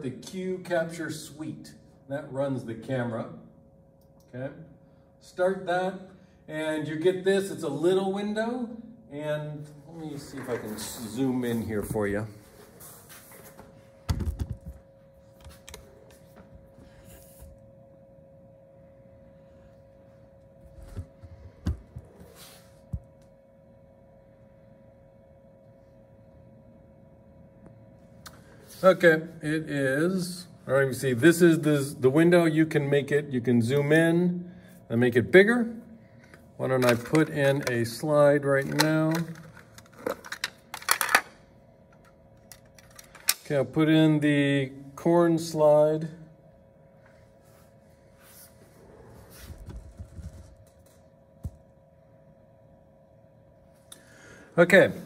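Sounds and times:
electrical hum with high tone: 0:00.0 - 0:55.0.

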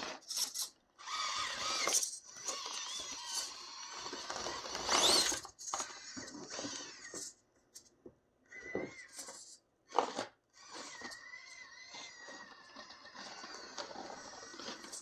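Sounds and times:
toy car electric motor whining: 0:00.0 - 0:07.4, 0:08.5 - 0:15.0.

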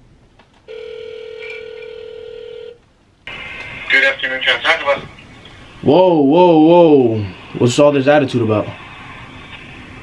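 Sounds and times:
telephone ringback tone: 0:00.7 - 0:02.8.

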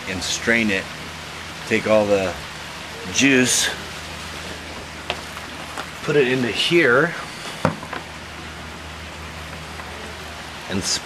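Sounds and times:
air pump humming: 0:00.0 - 0:11.0.

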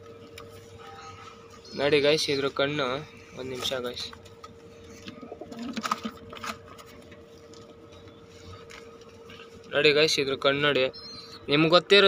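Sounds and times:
faint steady hum: 0:00.0 - 0:12.0
pigeon cooing: 0:05.0 - 0:06.2.

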